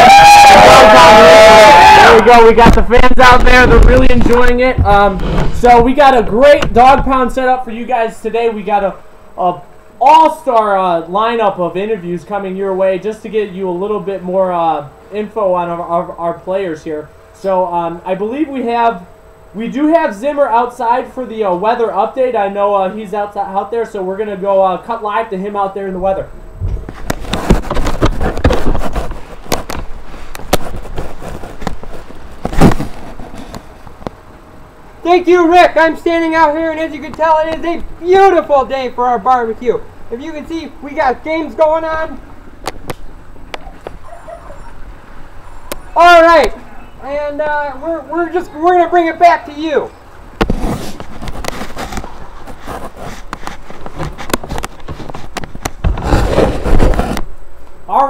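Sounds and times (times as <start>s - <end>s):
heavy low rumble: 2.4s - 7.3s, 25.9s - 28.8s
microphone handling noise: 2.6s - 7.2s, 26.4s - 34.3s, 50.4s - 57.4s
rustling: 26.6s - 34.2s, 50.1s - 57.4s.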